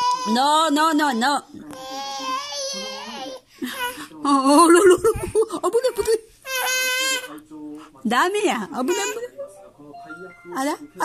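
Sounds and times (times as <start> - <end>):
infant crying: 0.0 - 4.8, 5.8 - 7.4, 8.8 - 9.3.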